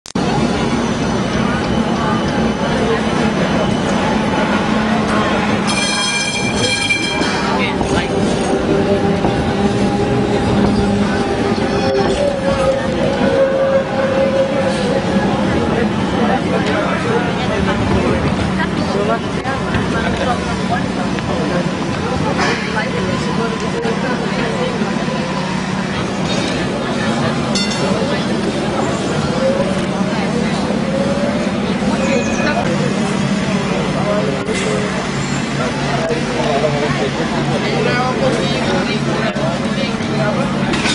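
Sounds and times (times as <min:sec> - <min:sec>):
people talking: 0:00.1 - 0:40.9
people's voices: 0:00.1 - 0:40.9
traffic rumble: 0:00.1 - 0:40.9.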